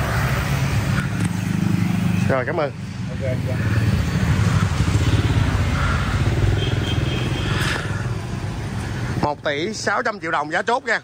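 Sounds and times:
motorbike engines rumbling: 0:00.0 - 0:11.0.

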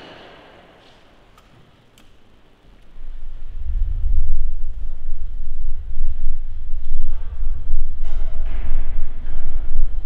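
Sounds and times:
low rumble: 0:02.7 - 0:10.0.

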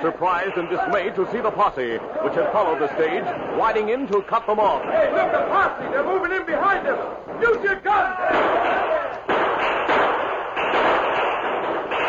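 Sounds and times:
gunshots: 0:00.0 - 0:12.0
men shouting: 0:04.8 - 0:09.1.

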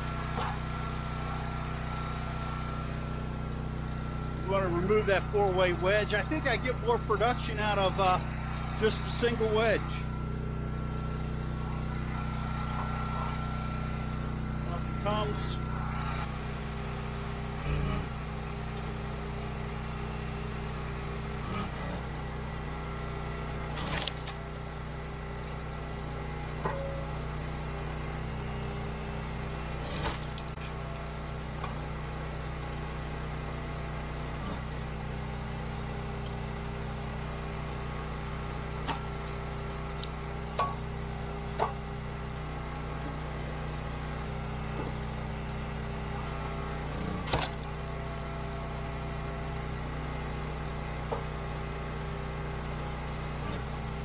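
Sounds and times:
log splitter engine running: 0:00.0 - 0:54.0
wood splitting knocks and cracks: 0:23.7 - 0:24.5, 0:29.9 - 0:30.9, 0:47.2 - 0:47.8.

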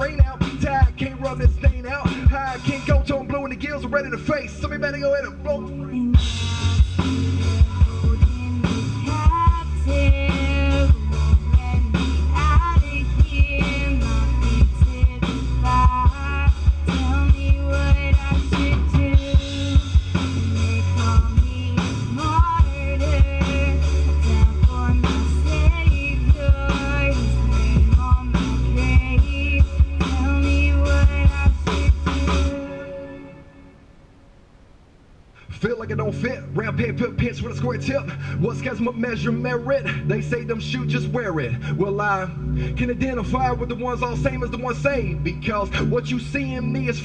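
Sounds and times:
drum kit playing a beat: 0:00.0 - 0:03.5, 0:06.2 - 0:32.6
rapping: 0:00.0 - 0:32.8, 0:35.4 - 0:47.0
heavy bass: 0:00.0 - 0:47.0
woman singing: 0:05.8 - 0:33.5.

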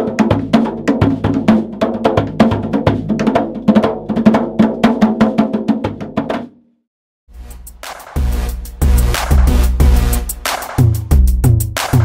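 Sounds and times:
djembe played by hand: 0:00.0 - 0:06.5.

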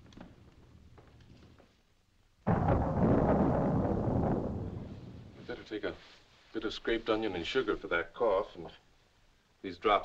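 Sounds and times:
loud deep rumbling: 0:02.5 - 0:05.4.

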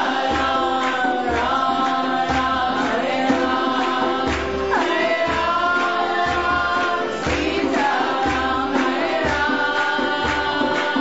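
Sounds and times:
harmonium chords: 0:00.0 - 0:11.0
voices singing devotional chant: 0:00.0 - 0:11.0.

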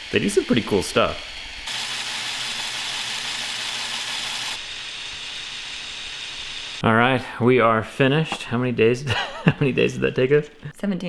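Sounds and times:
plastic gears whirring: 0:00.0 - 0:06.8.

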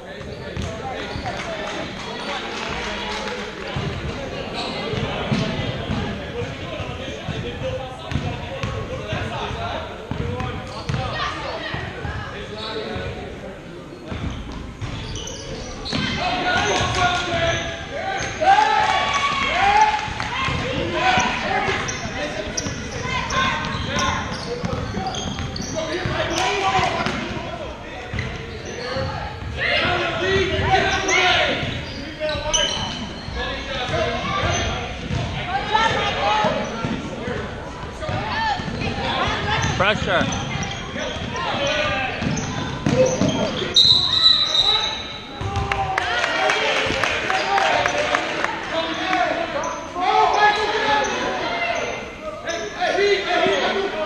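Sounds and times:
voices calling out in a gym: 0:00.0 - 0:54.0.

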